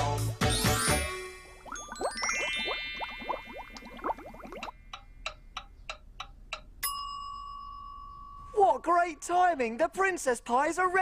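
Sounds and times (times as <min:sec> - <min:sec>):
twinkling rising swoops: 0:00.7 - 0:04.6
timer bell ding: 0:06.8 - 0:08.5.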